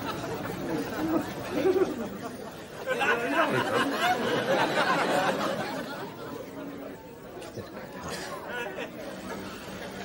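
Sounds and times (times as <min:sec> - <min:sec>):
indistinct chatter of many people: 0:00.0 - 0:10.0.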